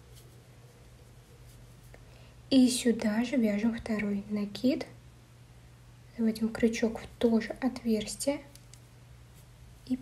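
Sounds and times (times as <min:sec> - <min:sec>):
yarn rustling with crochet hook: 0:00.0 - 0:02.0
low room hum: 0:00.0 - 0:10.0.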